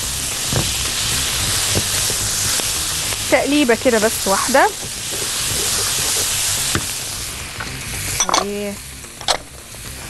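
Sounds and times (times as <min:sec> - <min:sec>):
vegetables sizzling in a frying pan: 0:00.0 - 0:10.0.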